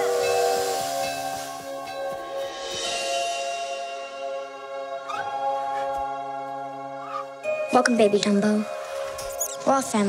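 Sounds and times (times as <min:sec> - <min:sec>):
steam hissing: 0:00.0 - 0:04.1.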